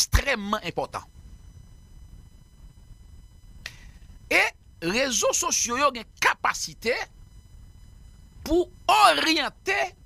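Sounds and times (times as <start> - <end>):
faint high-pitched electronic whine: 0.0 - 10.0
low room rumble: 0.0 - 10.0.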